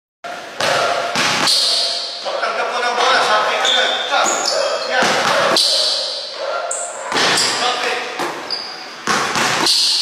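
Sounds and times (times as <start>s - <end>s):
basketball bouncing on hard floor: 0.6s - 1.8s, 4.2s - 5.8s, 7.1s - 7.6s, 8.2s - 9.8s.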